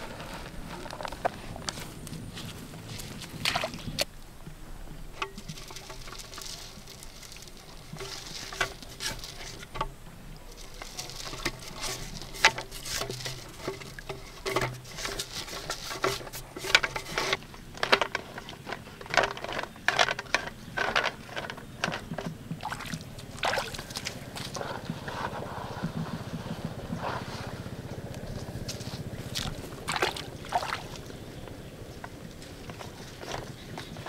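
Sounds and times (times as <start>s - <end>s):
hand scraping and tapping in pipe: 5.2s - 27.5s, 32.0s - 34.0s.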